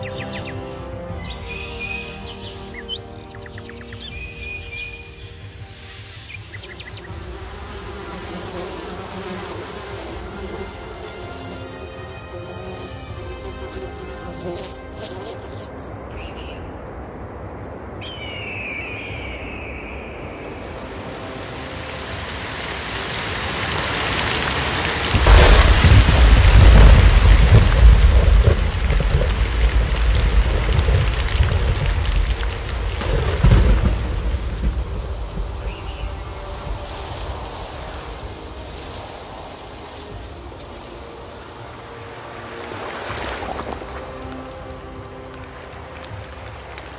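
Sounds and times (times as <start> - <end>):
steady rain: 6.4 - 16.2, 20.2 - 46.9
deep thunder rumble: 24.9 - 39.0.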